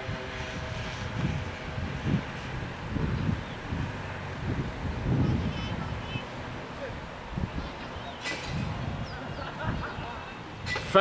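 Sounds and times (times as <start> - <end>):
distant road traffic: 0.0 - 11.0
wind buffeting microphone: 0.0 - 11.0.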